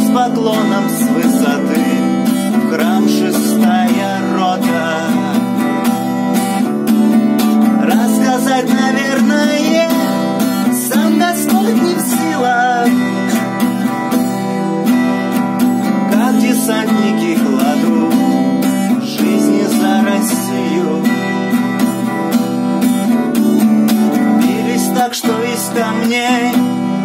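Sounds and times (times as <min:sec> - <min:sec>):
acoustic guitar strumming chords: 0:00.0 - 0:27.0.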